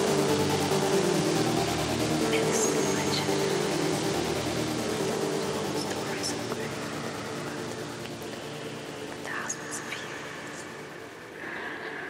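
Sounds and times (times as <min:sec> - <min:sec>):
breathy voice-like textures: 0:00.0 - 0:12.0
low sustained drone: 0:00.0 - 0:12.0.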